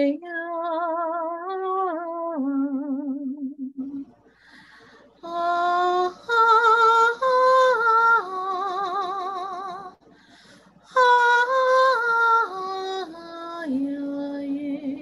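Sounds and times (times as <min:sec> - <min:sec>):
singer breath: 0:04.2 - 0:05.2, 0:10.0 - 0:10.8.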